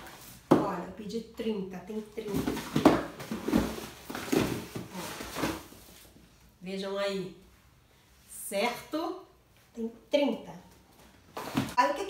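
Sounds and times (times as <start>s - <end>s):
small boxes knocking in cardboard box: 2.3s - 5.7s.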